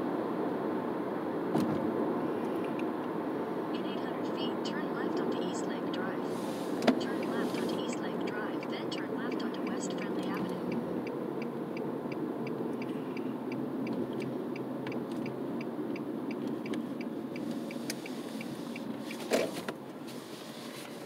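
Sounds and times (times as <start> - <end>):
car road and engine noise: 0.0 - 21.0
turn signal ticking: 3.8 - 20.0.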